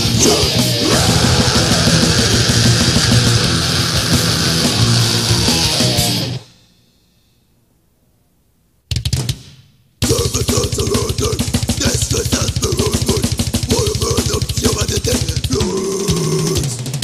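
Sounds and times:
death metal with distorted guitars: 0:00.0 - 0:06.6, 0:10.0 - 0:17.0.

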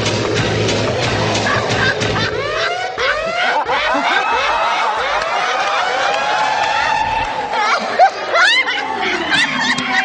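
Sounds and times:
people laughing: 0:01.1 - 0:10.0.

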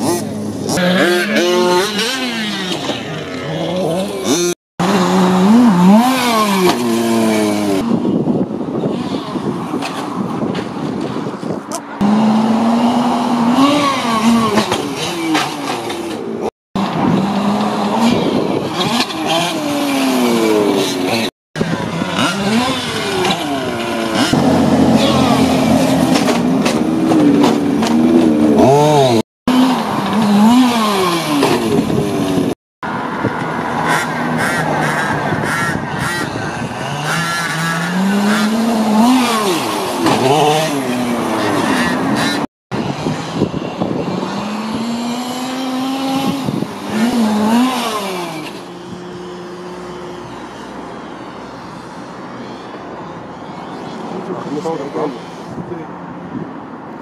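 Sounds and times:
small two-stroke engine revving: 0:00.0 - 0:08.1, 0:11.7 - 0:16.2, 0:16.8 - 0:32.6, 0:33.8 - 0:52.7.

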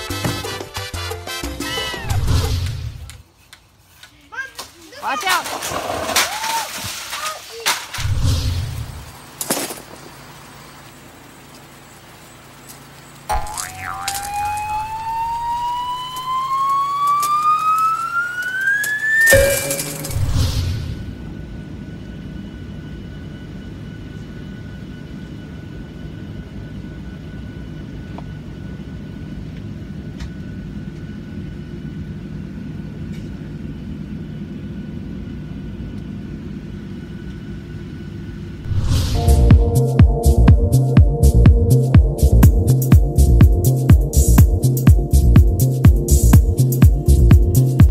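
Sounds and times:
airliner cabin drone: 0:08.1 - 0:47.9
rising whistle-like tone: 0:13.3 - 0:21.1.

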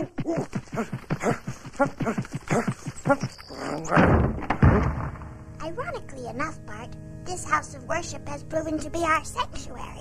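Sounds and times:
heavy wooden doors banging: 0:03.9 - 0:05.6.

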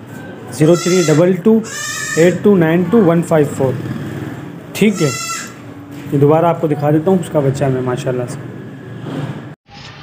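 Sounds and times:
goat bleating: 0:00.6 - 0:02.5, 0:04.8 - 0:05.7.

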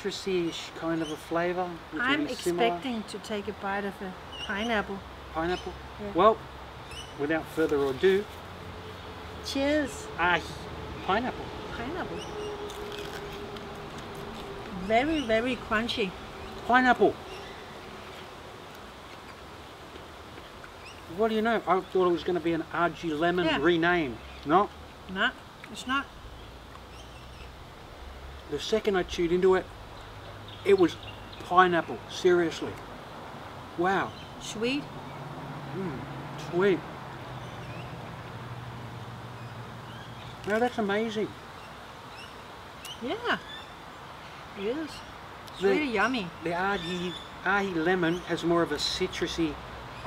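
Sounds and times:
chilli pod being chewed: 0:12.6 - 0:14.8.

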